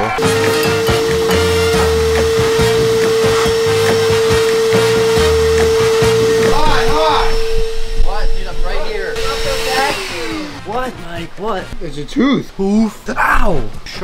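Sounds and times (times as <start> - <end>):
shop vacuum whining: 0.0 - 11.6.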